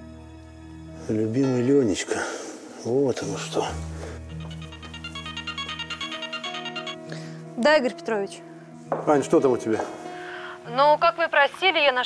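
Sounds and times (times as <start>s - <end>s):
background music with low notes: 0.0s - 12.0s
mobile phone ringtone: 4.3s - 7.1s.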